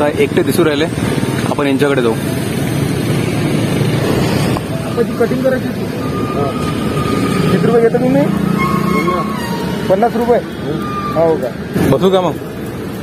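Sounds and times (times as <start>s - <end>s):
men talking: 0.0s - 2.6s, 4.6s - 12.7s
road traffic hum: 0.0s - 13.0s.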